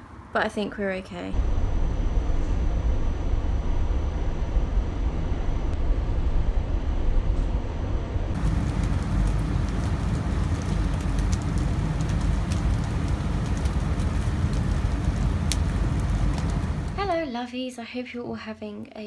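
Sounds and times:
deep thunder rumble: 1.3 - 17.3
rain falling: 8.4 - 17.2.

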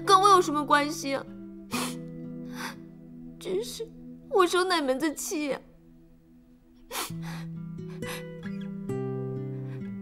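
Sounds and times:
soft background music: 0.0 - 10.0
woman's sharp breath: 6.9 - 8.4.

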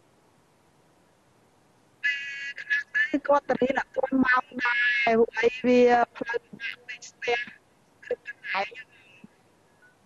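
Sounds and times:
woman's voice over video call: 2.5 - 8.8.

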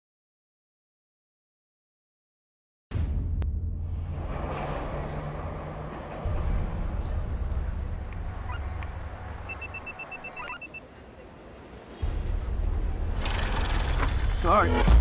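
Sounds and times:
whoosh: 3.0 - 8.0
deep rumble: 3.0 - 9.4
traffic-like noise: 3.9 - 15.0
faint electronic beeps: 7.0 - 7.3, 9.4 - 11.2.

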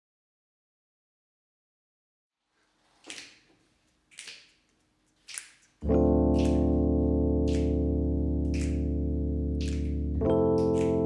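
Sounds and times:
piano chord: 5.8 - 11.0
sharp snap-like clicks: 6.4 - 6.6.

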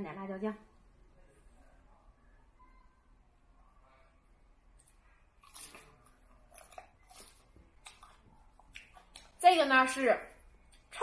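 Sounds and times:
lettuce crunching being chewed: 4.8 - 9.4.

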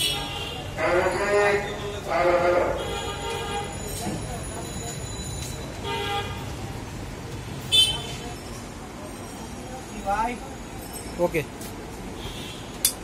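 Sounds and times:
background traffic hum: 0.0 - 13.0.

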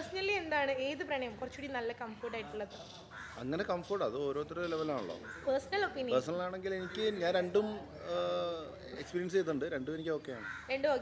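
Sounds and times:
crow cawing: 2.2 - 3.7, 5.0 - 5.9, 6.7 - 7.4, 10.3 - 11.0.

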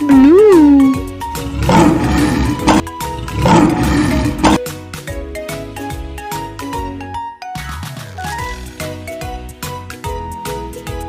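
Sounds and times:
bright children's music: 0.0 - 3.2, 4.1 - 11.0
cartoon bear growling roar: 0.0 - 4.6.

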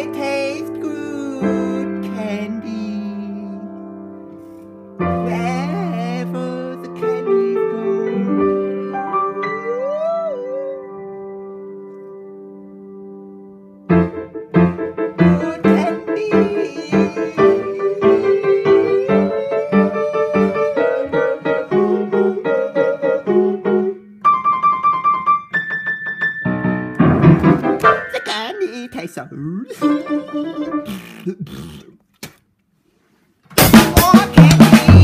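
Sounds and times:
grand piano chords and melody: 0.0 - 29.0.

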